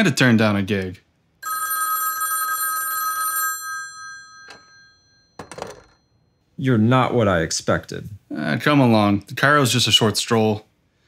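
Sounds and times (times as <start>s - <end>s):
electric bell ringing: 1.4s - 6.3s.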